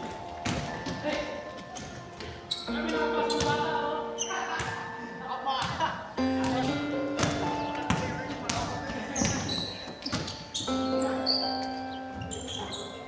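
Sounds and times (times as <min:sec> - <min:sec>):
basketballs bouncing on court: 0:00.0 - 0:03.7, 0:04.5 - 0:04.9, 0:05.6 - 0:10.8
background music: 0:00.0 - 0:13.0.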